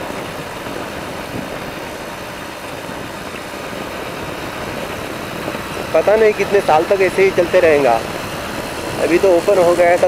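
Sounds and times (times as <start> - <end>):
motorcycle engine and road noise: 0.0 - 10.0
wind rushing over microphone: 0.0 - 10.0.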